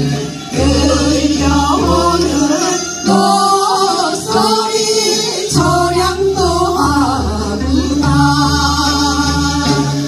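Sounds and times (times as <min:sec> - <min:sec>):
instrumental accompaniment: 0:00.0 - 0:10.0
women singing together: 0:00.0 - 0:10.0.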